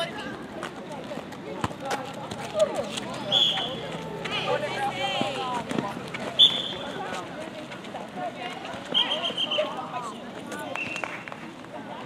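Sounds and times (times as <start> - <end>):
whistle blast: 3.3 - 3.8, 6.4 - 6.8, 8.9 - 9.7.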